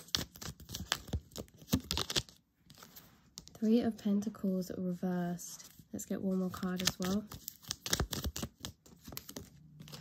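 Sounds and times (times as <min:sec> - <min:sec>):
cards being shuffled: 0:00.0 - 0:03.6, 0:06.5 - 0:10.0.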